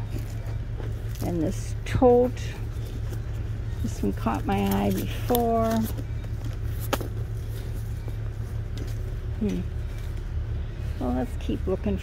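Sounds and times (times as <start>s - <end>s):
low hum of shop background: 0.0s - 12.0s.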